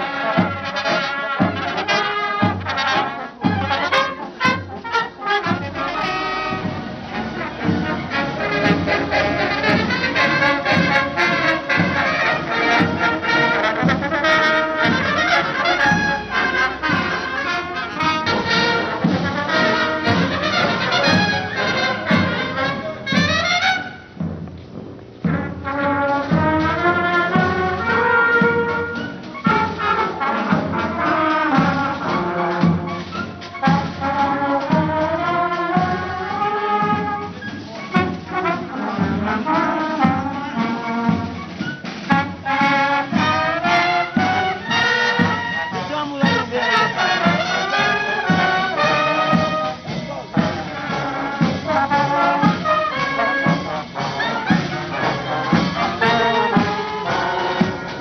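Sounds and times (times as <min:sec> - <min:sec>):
brass band playing a march: 0:00.0 - 0:58.0
steady drum beat: 0:00.0 - 0:58.0.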